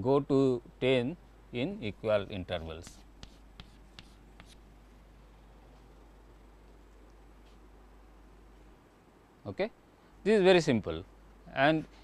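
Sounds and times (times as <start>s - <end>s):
chalk tapping on blackboard: 2.7s - 4.6s.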